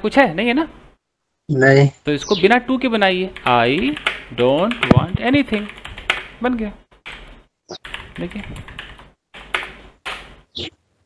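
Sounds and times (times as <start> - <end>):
typing on computer keyboard: 3.4 - 6.3, 7.1 - 10.2.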